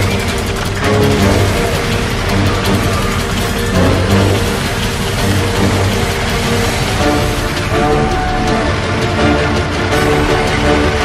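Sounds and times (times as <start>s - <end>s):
music with strong bass: 0.0s - 11.0s.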